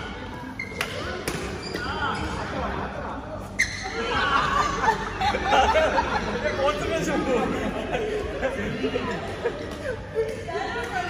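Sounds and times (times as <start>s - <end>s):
racket hitting shuttlecock: 0.7s - 1.9s.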